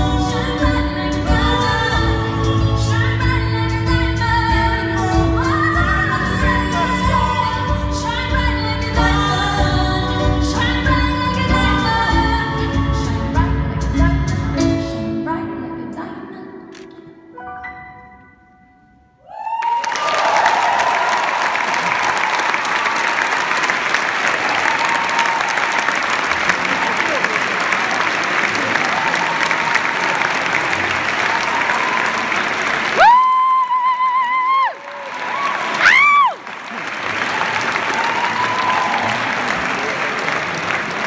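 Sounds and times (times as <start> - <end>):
high wavering whoops: 19.2 - 21.4, 33.0 - 36.4
audience applauding: 19.5 - 41.0.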